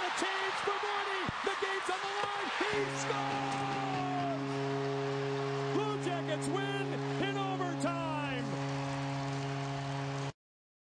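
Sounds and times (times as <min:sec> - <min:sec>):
voices shouting: 0:00.0 - 0:04.5
crowd cheering: 0:00.0 - 0:10.3
goal horn sounding a chord: 0:02.6 - 0:09.5.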